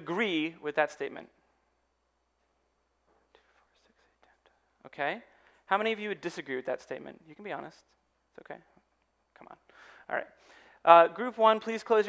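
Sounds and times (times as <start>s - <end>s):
faint whispering: 3.3s - 4.8s.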